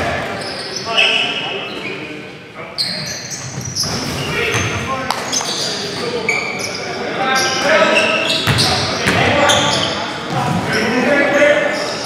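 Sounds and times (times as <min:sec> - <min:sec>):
sneakers squeaking on court floor: 0:00.0 - 0:02.0, 0:02.8 - 0:10.9
basketball bouncing: 0:08.4 - 0:09.4.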